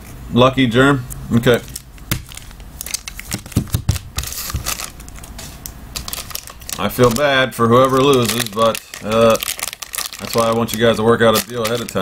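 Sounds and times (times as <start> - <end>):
foil wrappers crinkling: 1.4 - 12.0.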